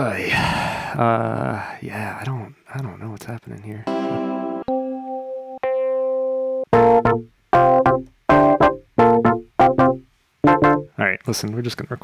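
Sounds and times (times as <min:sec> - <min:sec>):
keyboard chord stabs: 0:03.9 - 0:10.9.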